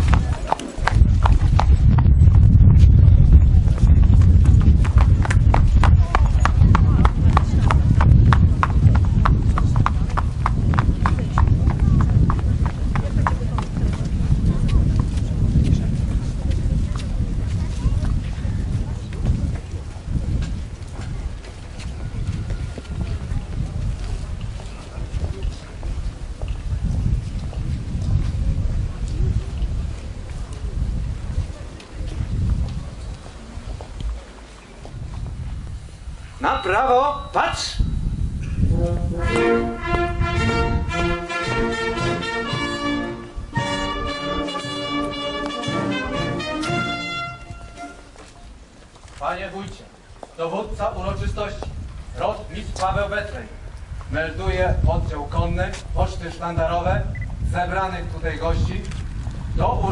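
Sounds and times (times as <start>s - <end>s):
wind buffeting microphone: 0.0s - 36.4s, 37.7s - 59.9s
brass band music: 38.7s - 48.3s.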